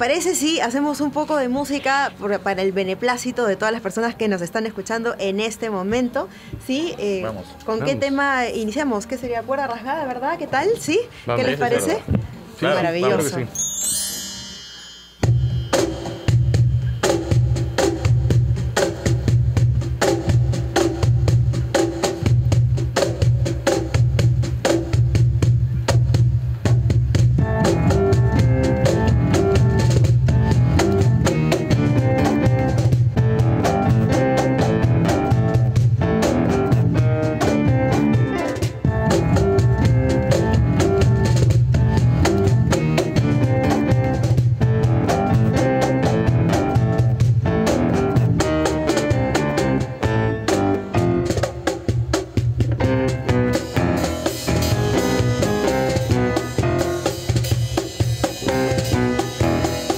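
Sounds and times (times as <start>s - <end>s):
guitar: 11.4s - 17.1s, 27.4s - 51.6s, 52.8s - 59.9s
steady percussion pulse: 12.8s - 25.4s
bass line: 26.8s - 51.4s, 52.8s - 57.1s.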